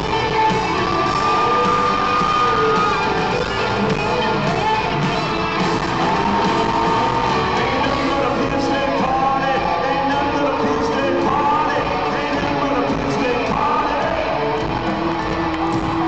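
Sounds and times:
crowd yelling and whooping: 0.0 - 16.0
live country-rock band with vocals: 0.0 - 16.0.

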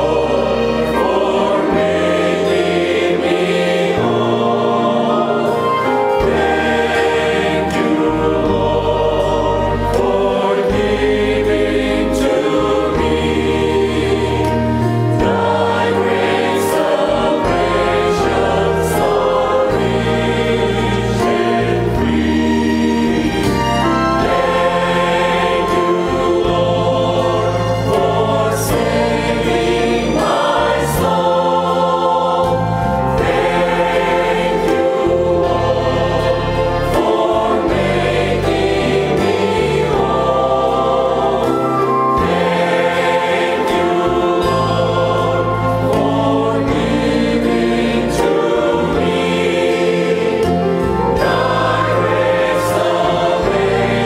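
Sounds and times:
choir singing a hymn: 0.0 - 54.0.

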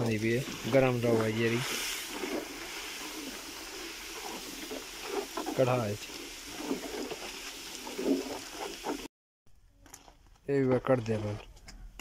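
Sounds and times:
juice boiling and hissing: 0.0 - 9.1.

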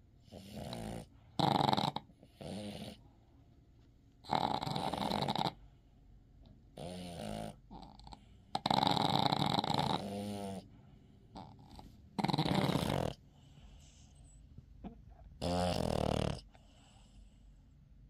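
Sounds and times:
dog snoring: 0.2 - 3.1, 4.2 - 5.7, 6.7 - 14.4, 15.4 - 17.2.

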